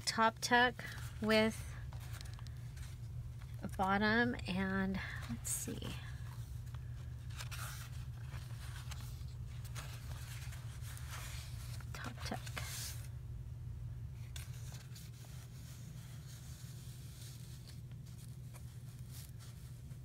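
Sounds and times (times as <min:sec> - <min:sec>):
steady low hum: 0:00.0 - 0:20.0
paper rustling and scraping: 0:00.8 - 0:13.1, 0:14.2 - 0:20.0.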